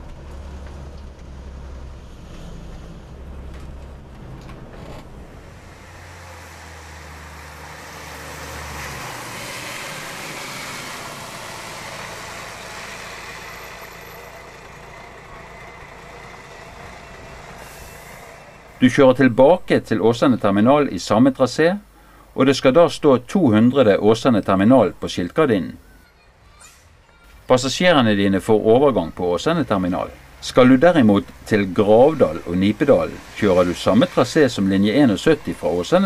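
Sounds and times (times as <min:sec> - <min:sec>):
bus driving past on wet road: 0:00.0 - 0:19.4, 0:26.7 - 0:36.0
bus engine drone: 0:00.0 - 0:36.0.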